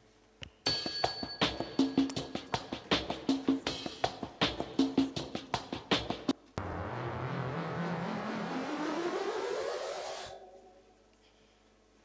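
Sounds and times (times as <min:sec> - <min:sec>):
rising whoosh sweep: 0:06.6 - 0:10.6.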